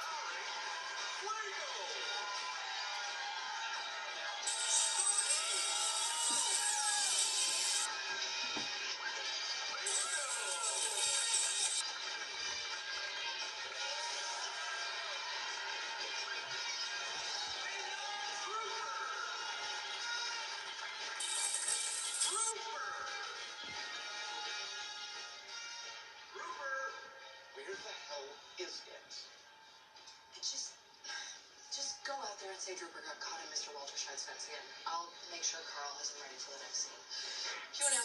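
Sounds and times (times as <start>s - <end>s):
cartoon music on television: 0.0s - 38.0s.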